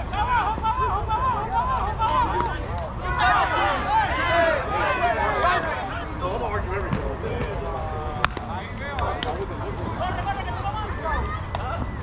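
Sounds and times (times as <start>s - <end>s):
players calling out: 0.0s - 12.0s
bat hitting softball: 8.2s - 8.5s.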